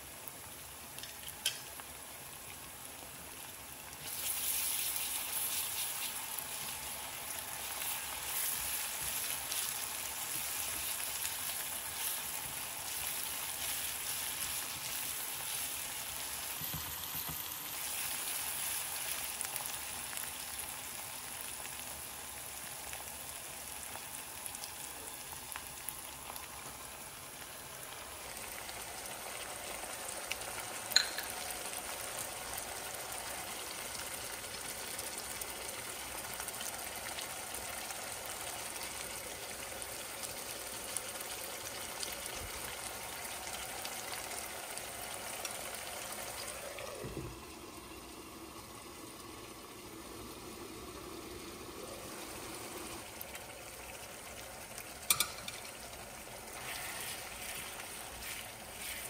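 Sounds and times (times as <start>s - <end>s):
onions sizzling in hot oil: 0.0s - 59.0s
spatula stirring in pan: 56.4s - 59.0s.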